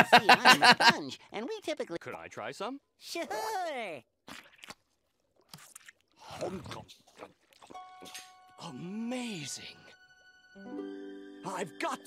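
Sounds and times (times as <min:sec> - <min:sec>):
cartoon chewing crunches: 0:04.2 - 0:08.3.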